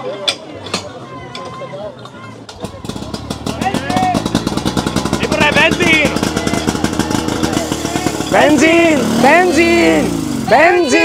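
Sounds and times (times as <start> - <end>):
fire pump engine running: 2.5 - 11.0
men shouting: 5.0 - 11.0.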